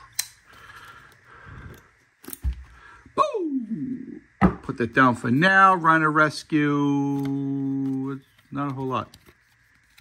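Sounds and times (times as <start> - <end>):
rustling of handling: 6.8 - 10.0.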